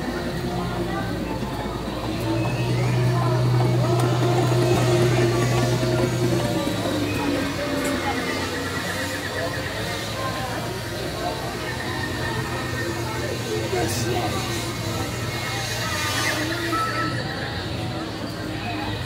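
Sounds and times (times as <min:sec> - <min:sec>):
people's voices: 0:00.0 - 0:19.0.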